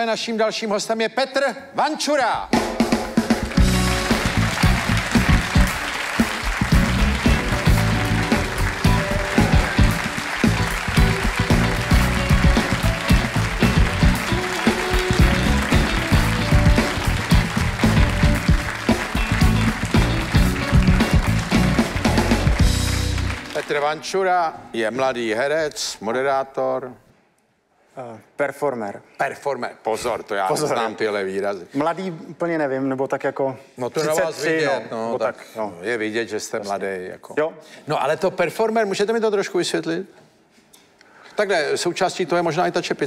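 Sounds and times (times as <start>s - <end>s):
live band playing upbeat music: 2.5s - 23.6s
audience applause: 3.3s - 24.1s.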